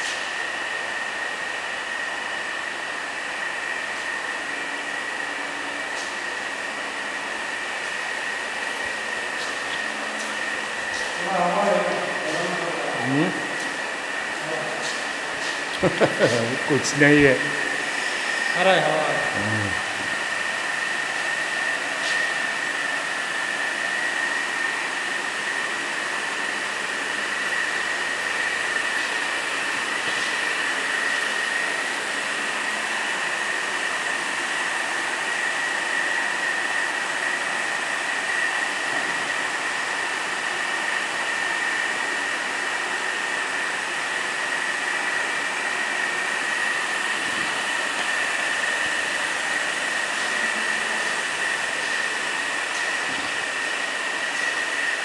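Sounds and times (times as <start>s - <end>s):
high-pitched whine: 2.6s - 25.6s, 46.8s - 55.0s.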